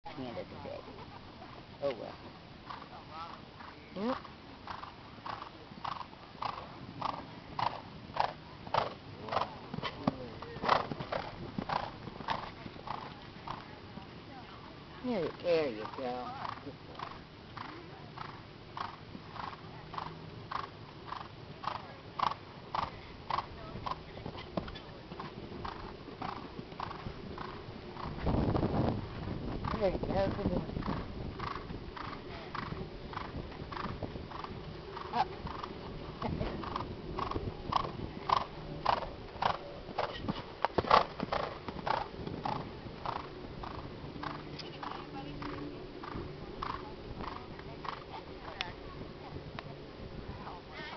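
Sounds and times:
horse cantering on sand: 0.2 - 48.8.

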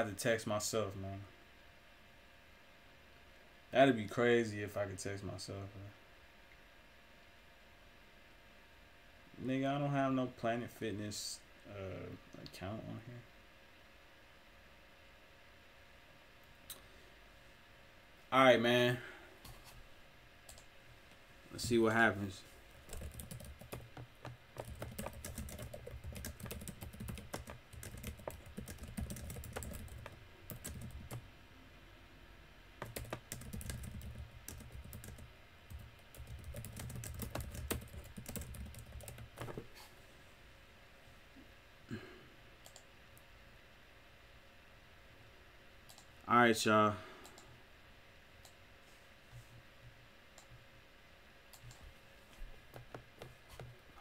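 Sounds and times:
computer keyboard typing: 22.8 - 31.2, 32.8 - 39.6.

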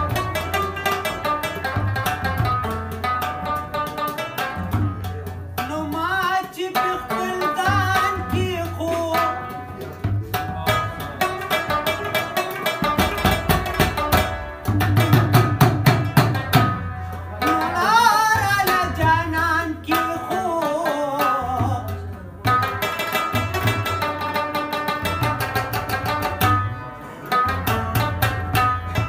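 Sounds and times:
clay pot drum beats: 0.0 - 29.0.

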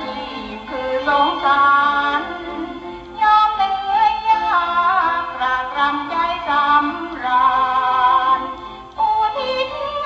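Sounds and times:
instrumental accompaniment: 0.0 - 10.0
woman singing: 0.0 - 10.0.

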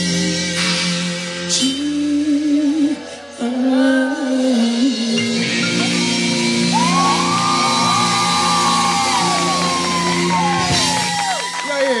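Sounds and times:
live band with bass and drums: 4.2 - 12.0
people shouting and whooping: 6.6 - 12.0.

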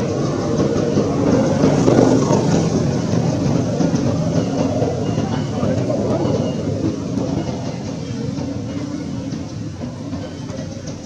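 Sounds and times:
loud low rumble: 0.0 - 11.0.

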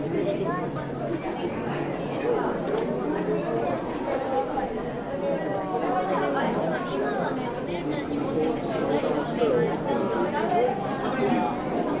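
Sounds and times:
overlapping voices hubbub: 0.0 - 12.0.

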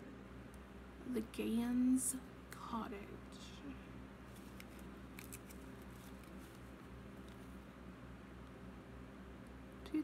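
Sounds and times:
steady low hum: 0.0 - 10.0
small clicks and handling noise: 4.3 - 7.5.

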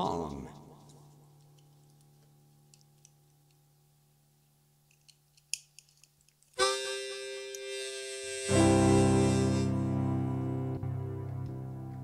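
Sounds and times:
harmonica handling clicks: 4.9 - 7.8
blues harmonica chord: 6.6 - 12.0
electric piano chords: 8.2 - 12.0.

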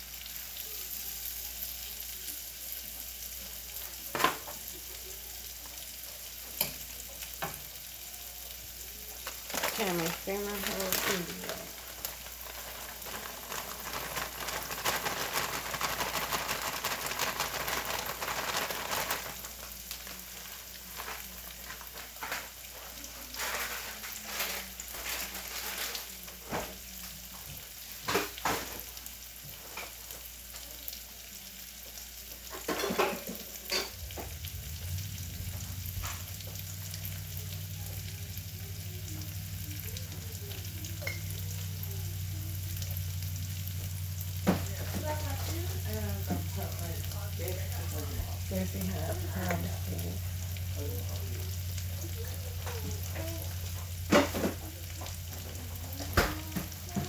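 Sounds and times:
food sizzling in a pan: 0.0 - 57.0
plastic bag rustling: 9.1 - 27.0.

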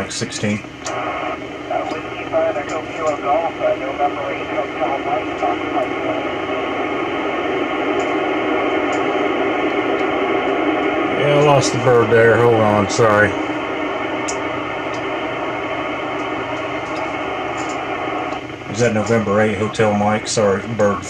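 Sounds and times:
noisy radio voice: 0.0 - 21.0
radio static hiss: 0.0 - 21.0.

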